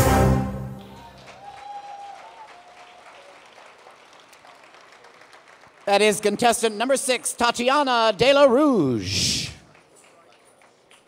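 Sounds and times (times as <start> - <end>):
crowd clapping: 0.7 - 7.3, 9.6 - 11.0
man speaking: 5.9 - 9.7.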